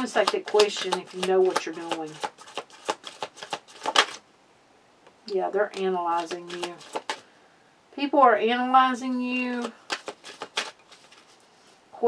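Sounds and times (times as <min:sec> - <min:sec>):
cards being shuffled: 0:00.0 - 0:04.2, 0:05.7 - 0:07.3, 0:09.3 - 0:11.5.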